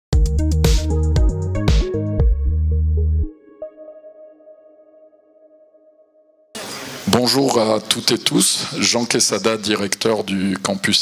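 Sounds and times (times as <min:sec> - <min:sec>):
held electronic chord: 0:00.2 - 0:07.6.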